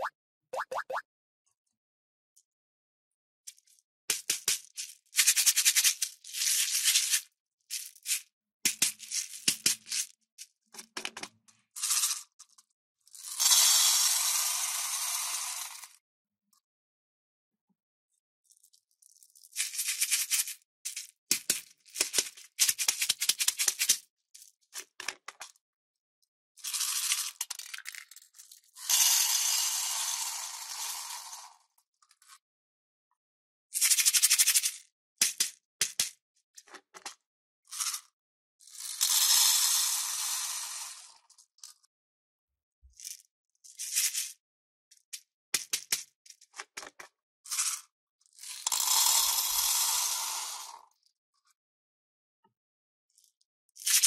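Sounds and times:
beads pouring into tin: 26.6s - 31.6s, 38.7s - 41.2s, 47.5s - 50.8s.

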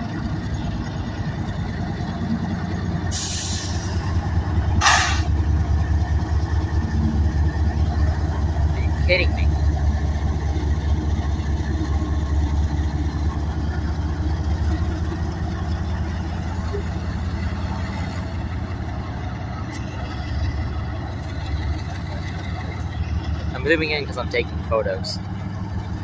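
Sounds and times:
diesel locomotive engine droning: 0.0s - 26.0s.

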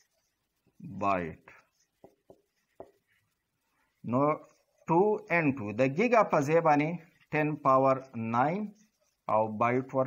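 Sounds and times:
faint writing strokes: 0.0s - 10.0s.

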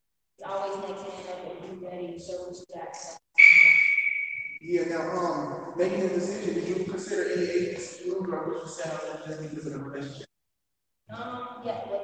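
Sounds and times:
high-pitched whistle-like tone: 3.4s - 4.6s.

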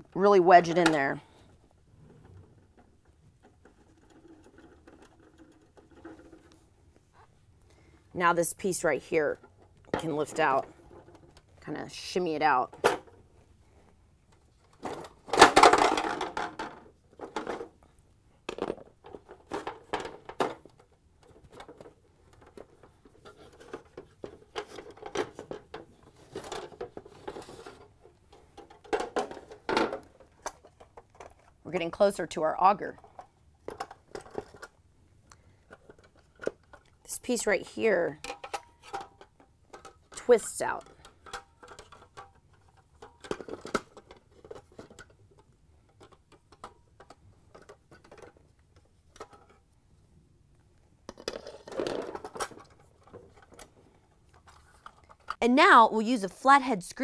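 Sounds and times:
plastic parts clicking and scraping: 0.6s - 7.3s, 9.3s - 11.6s, 12.4s - 32.2s, 32.8s - 49.8s, 50.5s - 55.4s.

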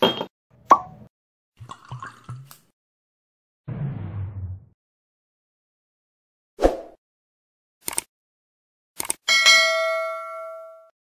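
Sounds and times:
liquid dripping into a glass: 1.6s - 2.6s.

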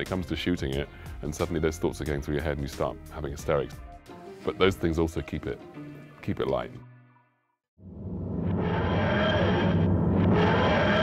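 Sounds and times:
low hum: 7.8s - 11.0s
grinding sound effect: 8.4s - 11.0s.

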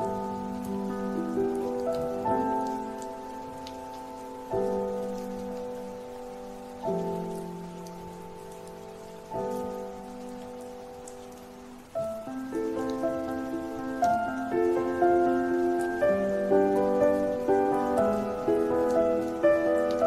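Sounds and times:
rain: 0.0s - 20.0s
slow piano chords: 0.0s - 20.0s.

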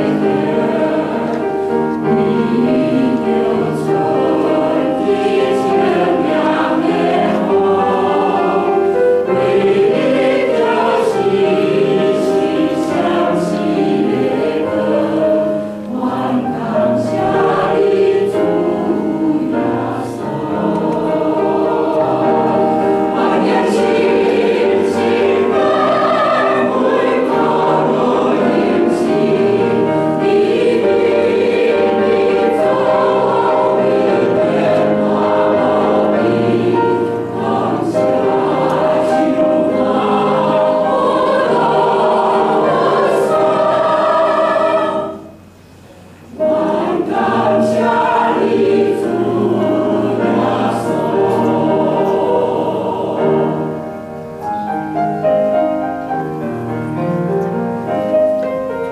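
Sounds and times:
church choir singing a hymn: 0.0s - 58.9s.

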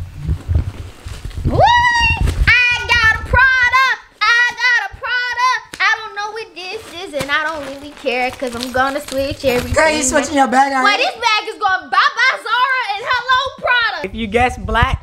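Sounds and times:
high-pitched wordless voice: 2.0s - 14.8s.

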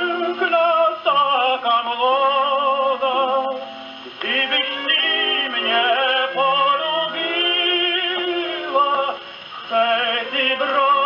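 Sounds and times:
orchestral music from gramophone: 0.0s - 11.0s.

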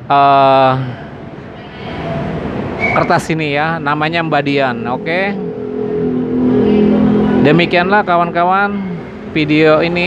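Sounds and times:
motorcycle engine running: 4.3s - 9.4s.

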